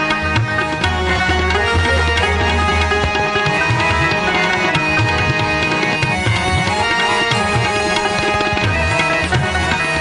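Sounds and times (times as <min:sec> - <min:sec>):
held melody notes: 0:00.0 - 0:10.0
tabla strokes: 0:00.0 - 0:10.0.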